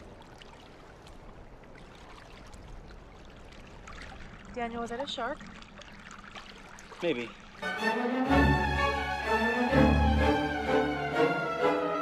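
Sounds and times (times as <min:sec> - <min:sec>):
small splashes: 0:00.0 - 0:07.8
sea water lapping: 0:00.0 - 0:11.6.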